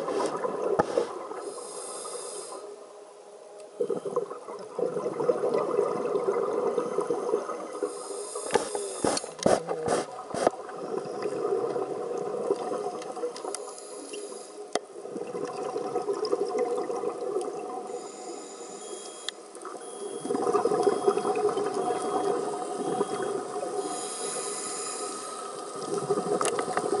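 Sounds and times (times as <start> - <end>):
regulator bubbles underwater: 3.8 - 8.0, 9.7 - 13.6, 14.9 - 18.0, 19.6 - 24.1, 25.5 - 27.0.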